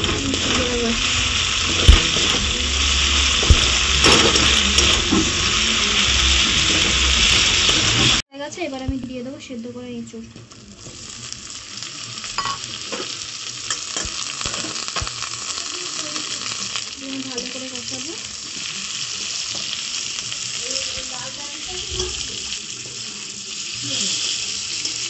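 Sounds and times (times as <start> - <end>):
metal spatula scraping a wok: 0.0 - 8.2
food sizzling in hot oil: 0.0 - 8.3, 9.6 - 25.0.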